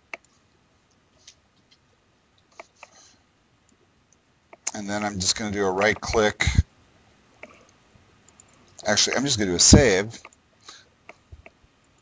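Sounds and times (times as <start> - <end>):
man speaking: 4.7 - 6.6, 8.8 - 10.2.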